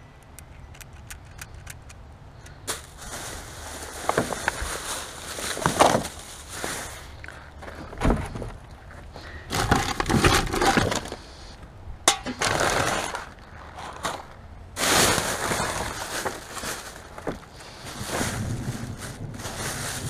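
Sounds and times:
bin bags rustling and crinkling: 2.6 - 8.6, 9.2 - 11.5, 12.1 - 20.0.

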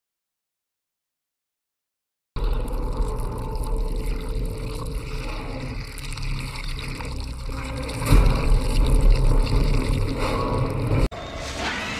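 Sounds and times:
deep low rumble: 2.4 - 11.1.

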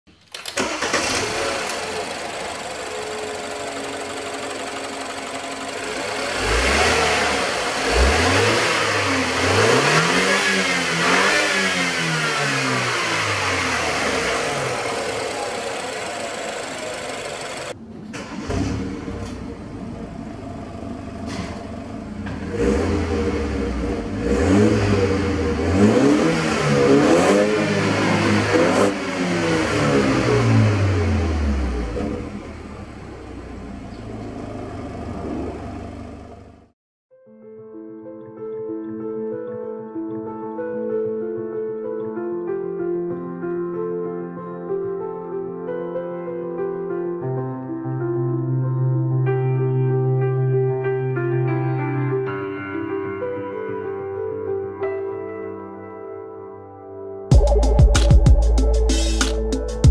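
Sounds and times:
car engine starting and revving: 0.4 - 36.8.

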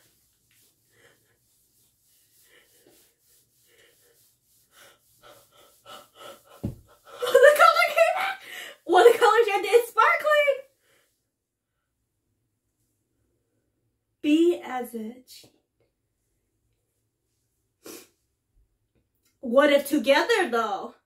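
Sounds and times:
woman gasping: 8.4 - 8.9.

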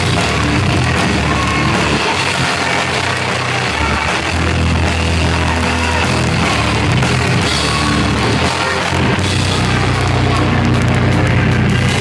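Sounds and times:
live metal band playing: 0.0 - 12.0.

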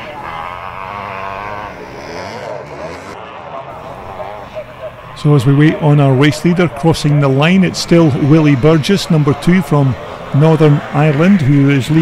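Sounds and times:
motocross bike engines revving: 0.0 - 12.0.

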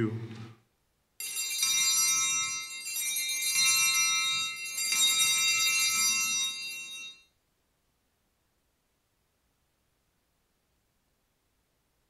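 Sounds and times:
small bells ringing: 1.2 - 7.3.

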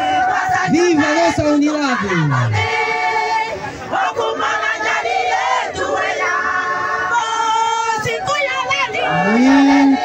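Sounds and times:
crowd of women cheering: 9.0 - 10.0.

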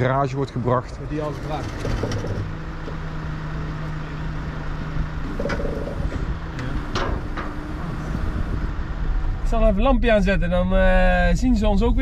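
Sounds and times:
vehicle engine idling: 0.0 - 11.2
short clicks and knocks: 5.3 - 7.8.

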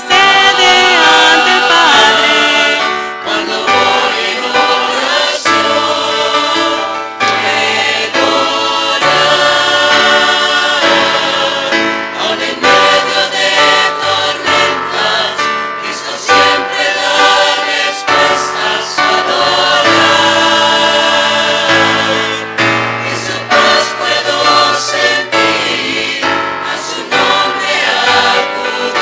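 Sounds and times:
choir singing a hymn: 0.0 - 29.0.

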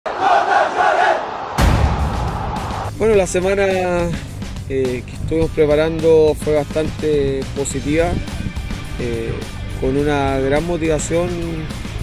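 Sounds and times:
crowd chanting in unison: 0.1 - 2.9
deep hit: 1.6 - 3.4.

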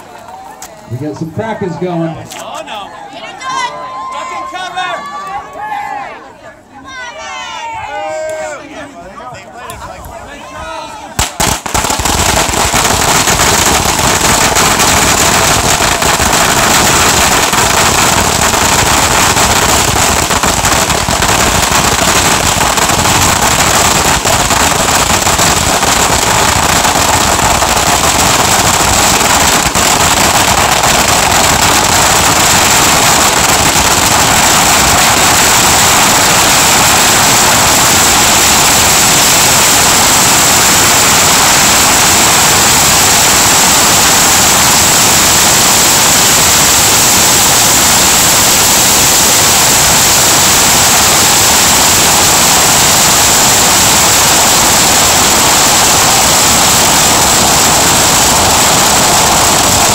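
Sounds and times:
firecrackers bursting: 11.1 - 59.9.

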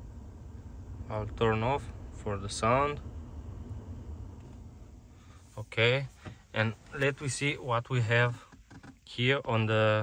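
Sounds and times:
blower fan winding down: 0.0 - 5.3.

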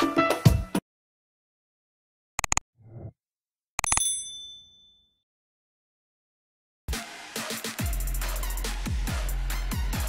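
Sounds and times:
bright bell ding: 3.8 - 5.2.

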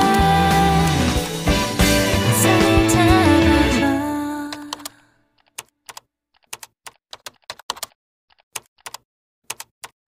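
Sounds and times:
keyboard typing clicks: 4.5 - 10.0.

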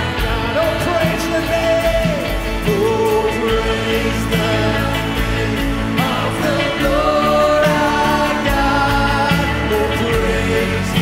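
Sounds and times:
live rock band: 0.0 - 11.0
voices singing: 0.0 - 11.0.

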